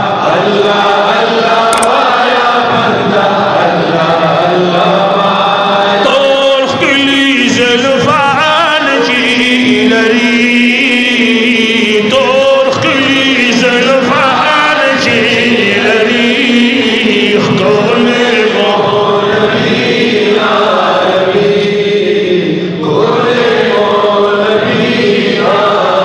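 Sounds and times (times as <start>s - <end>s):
men singing without instruments: 0.0s - 26.0s.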